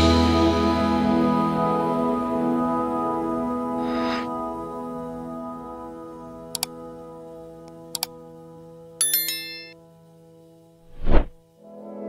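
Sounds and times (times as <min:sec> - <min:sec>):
soft sustained music: 0:00.0 - 0:10.8, 0:11.4 - 0:12.0
notification bell chime: 0:09.0 - 0:09.8.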